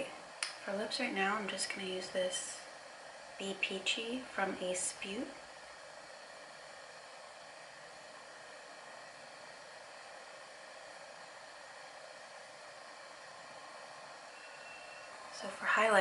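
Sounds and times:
faint steady hiss: 0.0 - 16.0.

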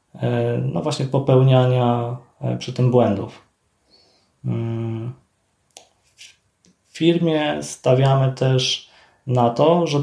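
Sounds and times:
man speaking: 0.1 - 3.5, 4.4 - 5.2, 6.9 - 10.0
brief breath: 3.8 - 4.4, 8.9 - 9.2
mouth clicks: 5.7 - 6.8.

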